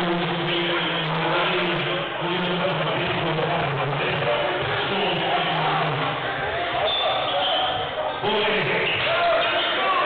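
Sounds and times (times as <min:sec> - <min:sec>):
mix of voices: 0:00.0 - 0:10.0.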